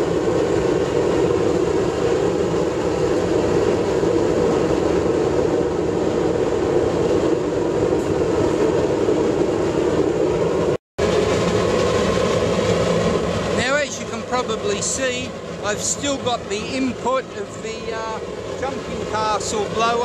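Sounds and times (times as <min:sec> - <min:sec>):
air blower noise: 0:00.0 - 0:20.0
rushing burner flame: 0:00.0 - 0:20.0.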